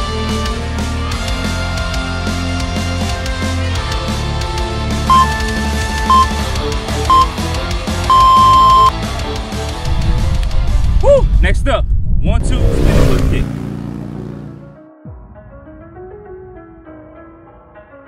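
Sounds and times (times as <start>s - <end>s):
rock music: 0.0s - 10.0s
long loud beep: 5.1s - 7.4s, 8.1s - 8.9s
short high beeps: 5.1s - 7.4s, 8.1s - 8.9s
voice clip: 11.4s - 13.5s.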